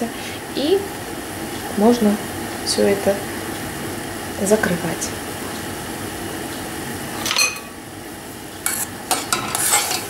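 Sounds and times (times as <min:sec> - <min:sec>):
spoon scraping around pot: 0:08.6 - 0:10.0.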